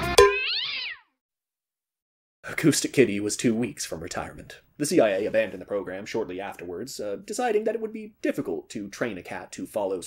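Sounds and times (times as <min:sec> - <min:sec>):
cat meowing: 0:00.4 - 0:01.1.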